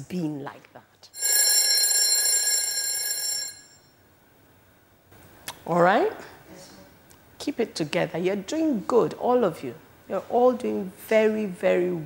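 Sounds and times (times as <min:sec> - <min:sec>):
steady high ringing tones: 0:01.2 - 0:04.1.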